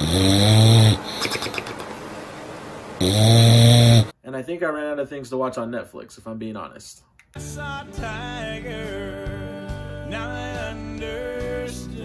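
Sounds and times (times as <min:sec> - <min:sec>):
dog snoring: 0:00.0 - 0:01.4, 0:03.0 - 0:04.1.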